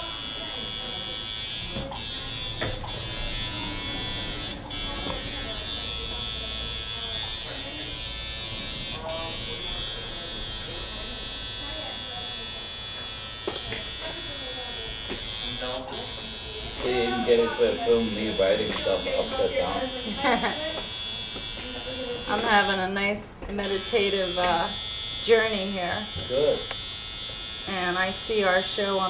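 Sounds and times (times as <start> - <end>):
tattoo machine buzzing: 0.0 - 29.0.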